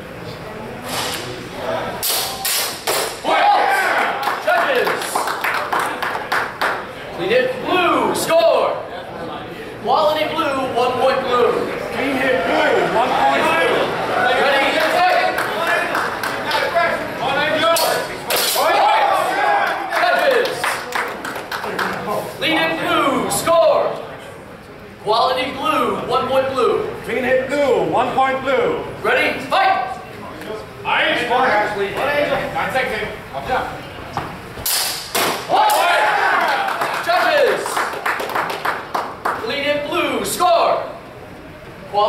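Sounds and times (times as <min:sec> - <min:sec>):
voices echoing in a hall: 0:00.0 - 0:34.6, 0:35.4 - 0:42.0
swords striking: 0:34.6 - 0:35.4.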